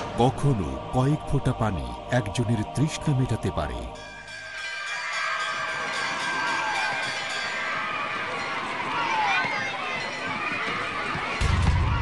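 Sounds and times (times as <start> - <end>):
background music: 0.0 - 9.2
children shouting and cheering: 4.6 - 12.0.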